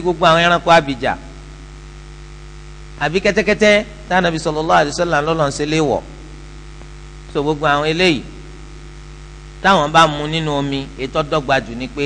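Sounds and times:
person speaking: 0.0 - 1.4, 3.0 - 6.3, 7.3 - 8.6, 9.6 - 12.0
electrical mains hum: 0.0 - 12.0.

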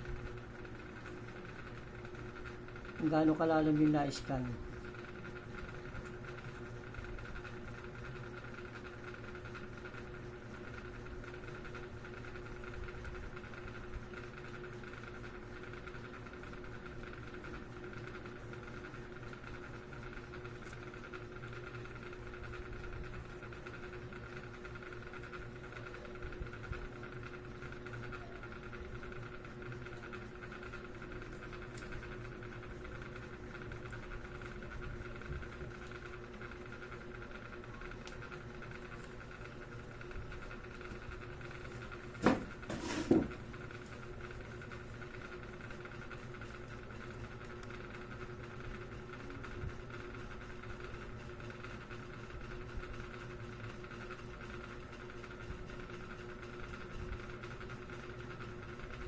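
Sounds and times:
steady background hum: 0.0 - 59.0.

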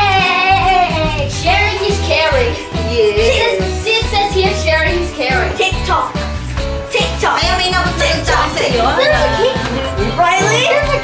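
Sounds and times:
steady bass line: 6.5 - 11.0.

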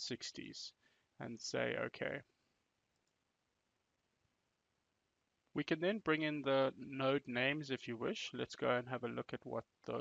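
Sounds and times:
faint computer mouse clicks: 2.9 - 3.2.

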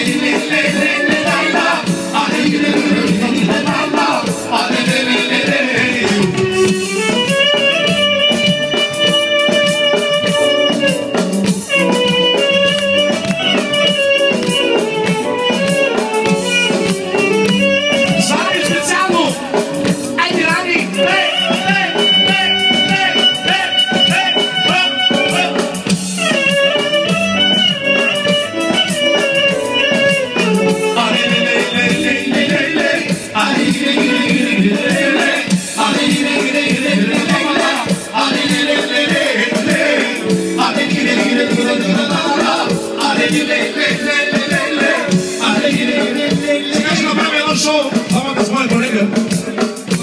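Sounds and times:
live folk band music: 0.0 - 50.0
clarinet melody: 6.2 - 19.6, 20.6 - 32.3.

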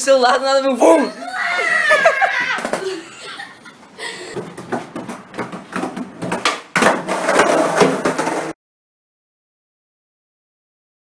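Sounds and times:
people speaking words: 0.0 - 1.9
people laughing hard: 1.3 - 4.4.

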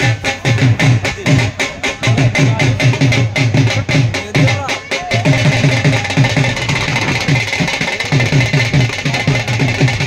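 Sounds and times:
drum beaten in fast rhythm: 0.0 - 10.0.

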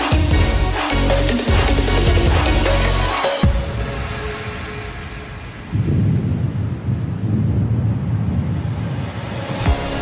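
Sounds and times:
loud low rumble: 3.6 - 9.2.

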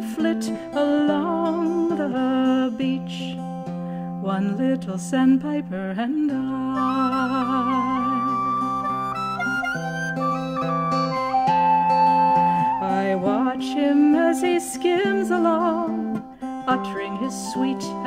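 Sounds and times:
plucked guitar-like chords: 0.0 - 18.0
flute-like melody: 6.6 - 18.0.

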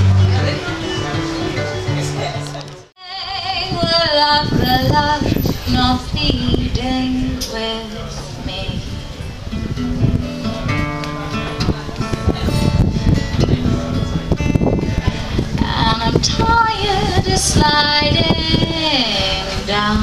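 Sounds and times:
acoustic guitar: 0.0 - 20.0
woman singing: 3.0 - 8.9, 15.6 - 20.0.

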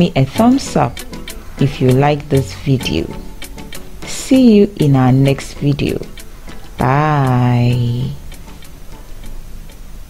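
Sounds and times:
faint regular ticking: 0.0 - 10.0
steady low hum: 0.0 - 10.0
person saying bye: 6.8 - 8.2.

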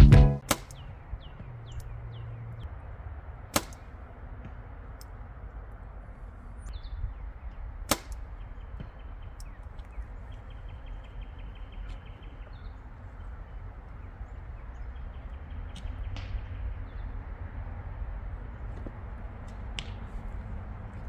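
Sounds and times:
guitar music: 0.0 - 0.4.

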